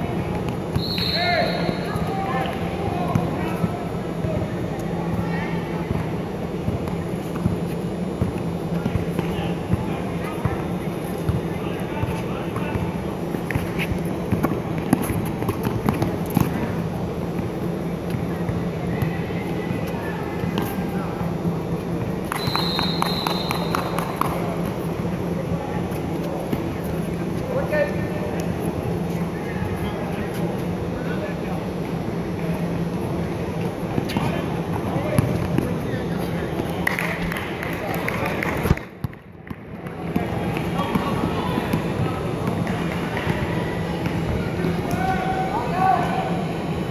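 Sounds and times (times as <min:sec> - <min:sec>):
steady hum: 0:00.0 - 0:46.9
basketball bounces: 0:13.5 - 0:16.8, 0:35.1 - 0:35.7, 0:38.6 - 0:45.0.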